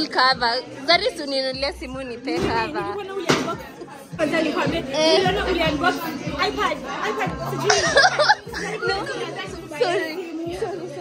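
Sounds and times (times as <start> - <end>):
people talking overlapping: 0.0 - 11.0.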